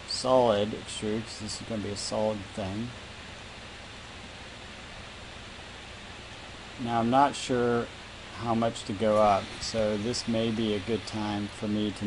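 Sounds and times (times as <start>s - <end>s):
background hiss: 0.0s - 12.0s
man's voice: 6.8s - 12.0s.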